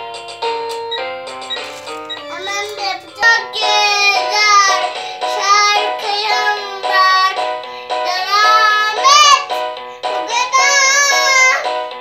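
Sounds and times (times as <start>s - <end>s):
simple electronic melody: 0.0s - 12.0s
child singing into toy microphone: 2.3s - 11.9s.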